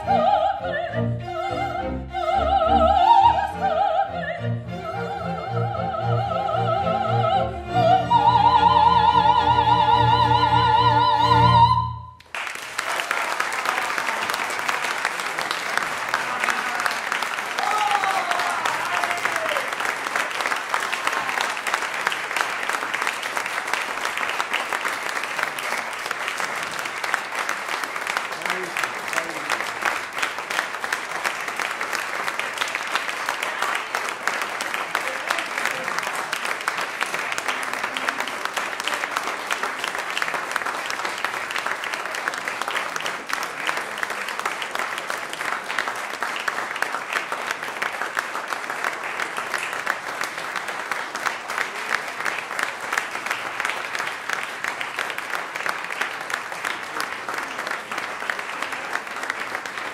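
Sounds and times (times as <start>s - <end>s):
audience applauding: 6.4s - 59.9s.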